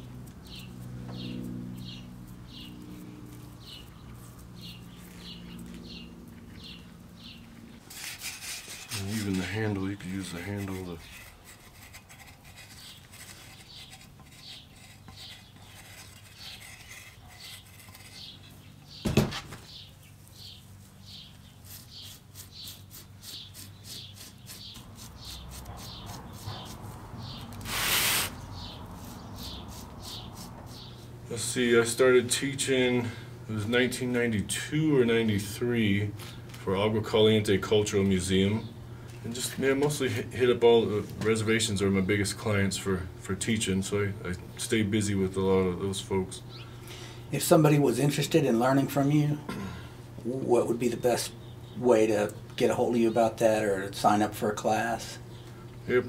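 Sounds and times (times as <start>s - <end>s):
fingers scraping damp clay: 10.2s - 18.4s, 21.6s - 27.0s.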